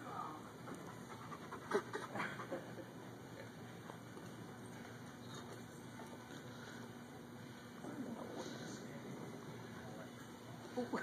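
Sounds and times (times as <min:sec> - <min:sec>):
dog panting: 0:00.6 - 0:02.8.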